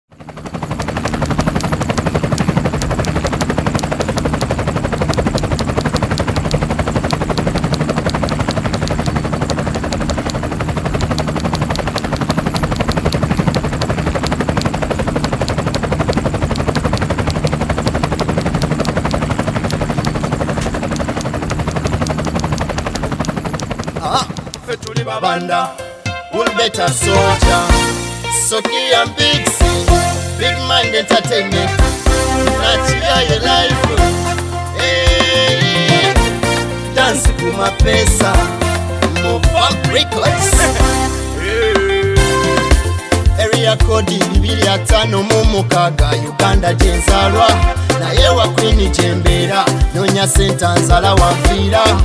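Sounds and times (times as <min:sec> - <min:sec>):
rapid mechanical clicking: 0:00.1 - 0:25.5, 0:26.4 - 0:41.3, 0:42.2 - 0:52.0.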